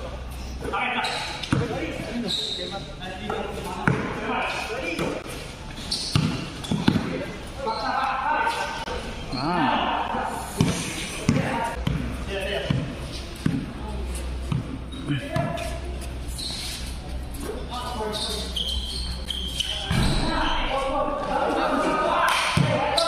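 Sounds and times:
basketball bouncing on court: 6.1s - 7.2s, 11.3s - 13.7s.

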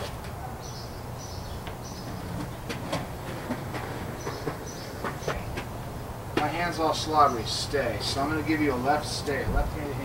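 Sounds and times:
skateboard wheels rolling on pavement: 0.0s - 10.0s.

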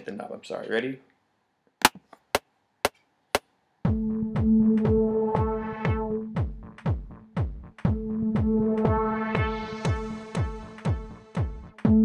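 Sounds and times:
synth and drum pattern: 3.9s - 12.0s.

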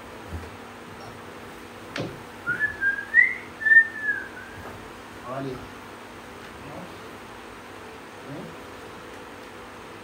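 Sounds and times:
person whistling a tune: 2.5s - 4.6s.

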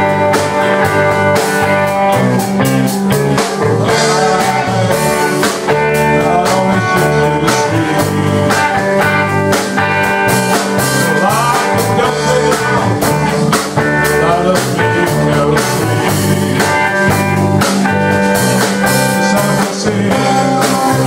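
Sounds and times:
bending guitar notes: 0.0s - 21.0s
live rock band playing: 0.0s - 21.0s.

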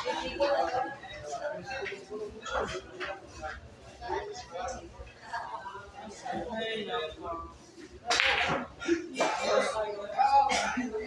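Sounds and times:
voices of people: 0.0s - 11.0s
pool cue striking ball: 8.1s - 8.7s.

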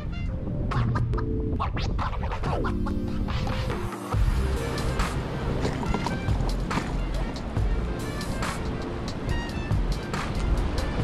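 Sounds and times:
melodic background music with bass: 0.0s - 11.0s.

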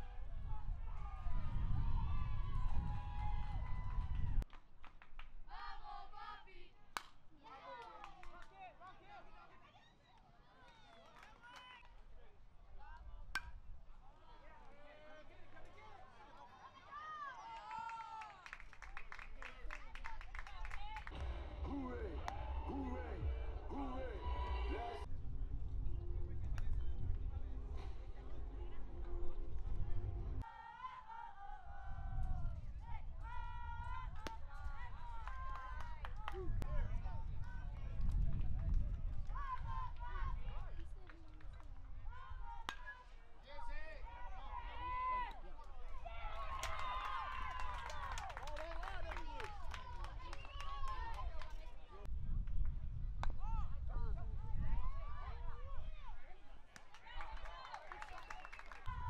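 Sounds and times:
low rumble: 21.1s - 30.4s
people shouting: 21.2s - 25.1s.

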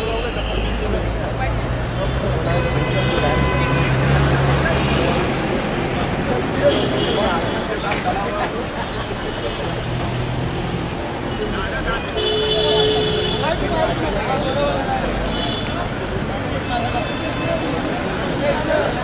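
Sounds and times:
babble of distant voices: 0.0s - 19.0s
traffic noise: 0.0s - 19.0s.

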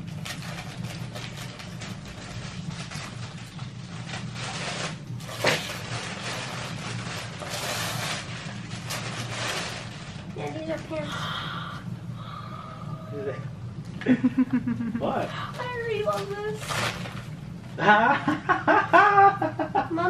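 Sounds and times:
paper ripping: 0.0s - 10.5s, 16.0s - 17.4s
wrapping paper crackling and rustling: 0.0s - 11.1s, 15.5s - 17.6s.

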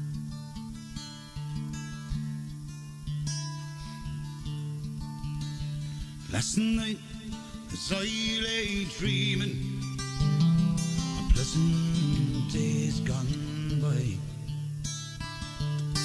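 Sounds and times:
strummed acoustic guitar: 0.0s - 16.0s
man singing a slow ballad: 6.3s - 10.0s, 11.0s - 14.6s.

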